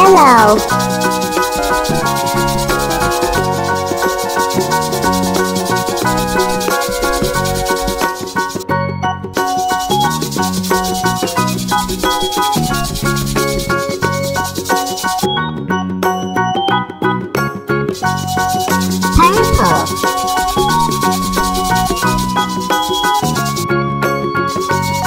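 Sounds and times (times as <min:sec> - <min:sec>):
marker scratching on paper: 0:00.0 - 0:08.6, 0:09.4 - 0:15.3, 0:18.0 - 0:23.7, 0:24.5 - 0:25.0
upbeat children's music: 0:00.0 - 0:25.0.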